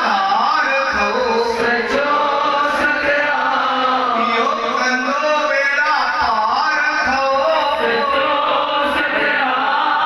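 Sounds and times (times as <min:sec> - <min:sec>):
man chanting a hymn: 0:00.0 - 0:09.5.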